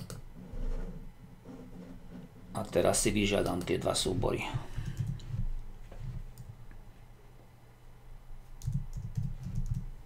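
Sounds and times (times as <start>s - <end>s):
typing on a computer keyboard: 4.8s - 5.3s, 8.6s - 9.9s.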